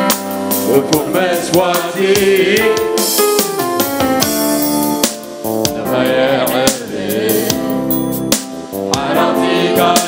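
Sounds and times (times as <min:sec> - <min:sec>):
keyboard and guitar: 0:00.0 - 0:10.0
person singing: 0:00.7 - 0:03.1, 0:05.7 - 0:07.8.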